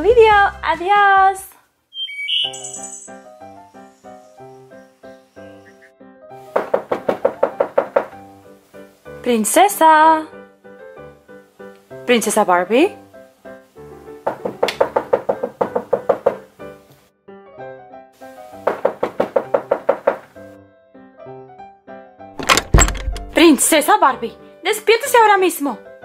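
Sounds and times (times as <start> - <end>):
soft background music: 0.0 - 1.5, 2.3 - 26.0
rapid knocks on a door: 6.5 - 8.2, 14.2 - 16.5, 18.6 - 20.4.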